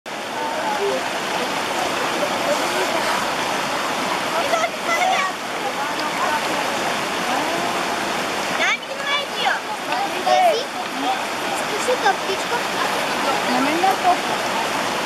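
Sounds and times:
mountain stream rushing: 0:00.1 - 0:15.0.

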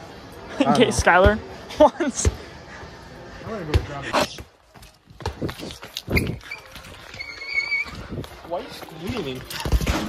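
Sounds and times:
short high squeaks: 0:06.1 - 0:08.1.

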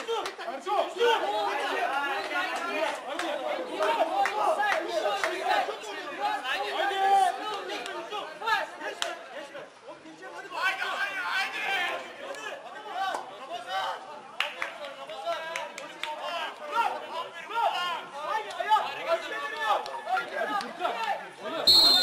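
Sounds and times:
people talking over one another: 0:00.0 - 0:22.0.

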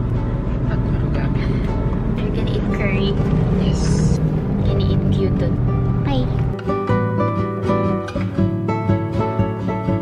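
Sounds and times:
car road and engine rumble: 0:00.0 - 0:07.0
background music: 0:00.0 - 0:10.0.

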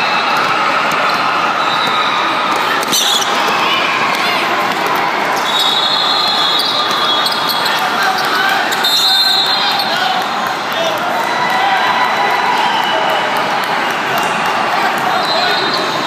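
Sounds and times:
crowd in large hall: 0:00.0 - 0:16.0
whistle blasts: 0:05.4 - 0:07.6, 0:08.8 - 0:09.9
shoes squeaking on court: 0:05.4 - 0:09.1.

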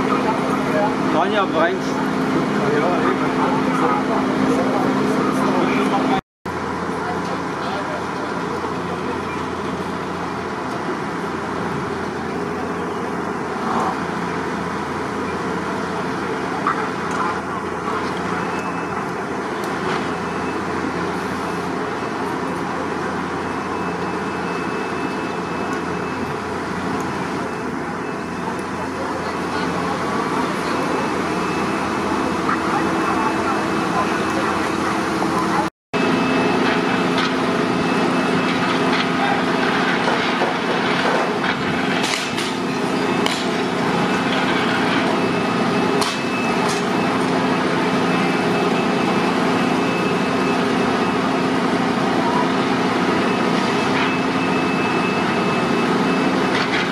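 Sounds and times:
fire engines running: 0:00.0 - 0:56.9
indistinct voices: 0:26.8 - 0:56.9.

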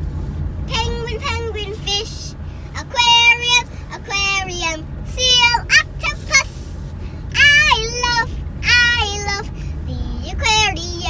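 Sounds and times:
car road noise hum: 0:00.0 - 0:11.0
girl singing: 0:00.7 - 0:11.0.

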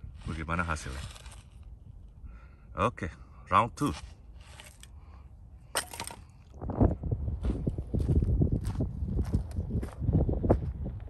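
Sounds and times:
wind rumbling on microphone: 0:00.0 - 0:02.4, 0:06.3 - 0:11.0
footsteps crunching on gravel: 0:07.4 - 0:10.8.

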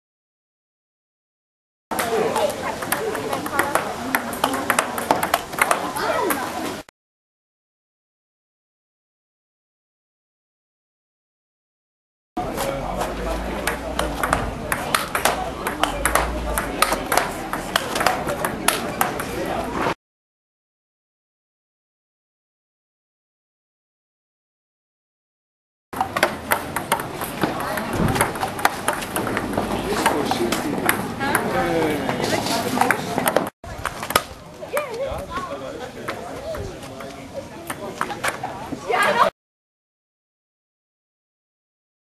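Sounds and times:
child's voice: 0:06.0 - 0:06.5
table tennis ball clicks: 0:13.6 - 0:19.4.

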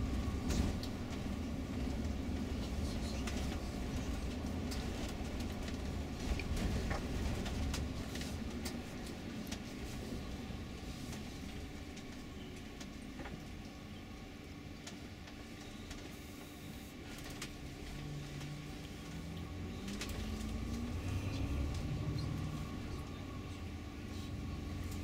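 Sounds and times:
bus engine and road rumble: 0:00.0 - 0:25.0.

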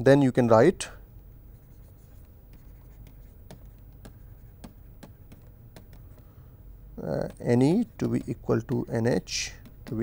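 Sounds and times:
low steady hum: 0:00.0 - 0:10.0
stylus tapping on pen tablet: 0:02.1 - 0:06.3, 0:07.0 - 0:10.0
sharp ticks: 0:07.2 - 0:10.0.

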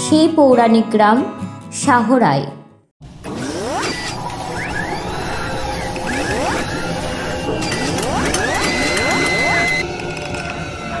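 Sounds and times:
mechanical whirring and clatter: 0:03.1 - 0:10.6.

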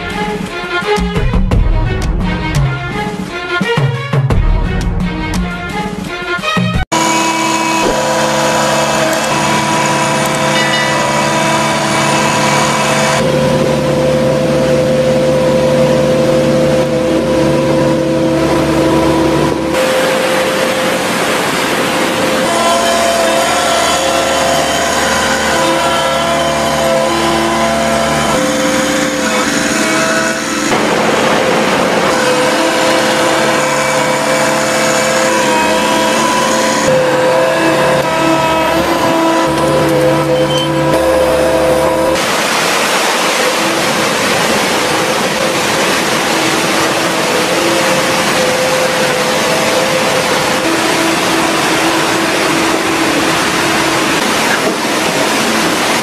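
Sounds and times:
heavy equipment engines running: 0:00.0 - 0:56.0
whining tones: 0:06.9 - 0:42.3.

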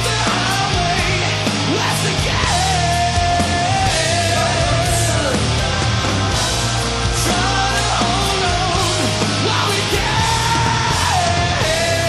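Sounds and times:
metal band playing: 0:00.0 - 0:12.0.

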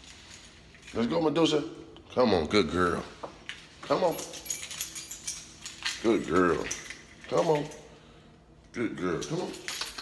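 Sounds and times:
light metallic jingling: 0:03.6 - 0:08.3, 0:09.0 - 0:10.0.

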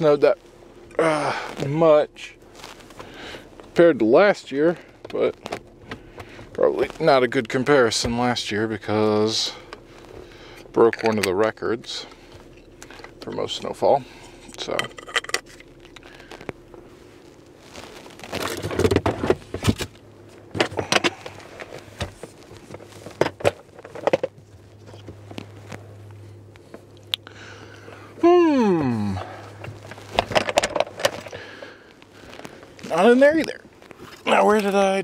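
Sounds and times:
man groaning: 0:00.9 - 0:01.5, 0:28.2 - 0:29.5
fabric rustling: 0:16.2 - 0:18.7.

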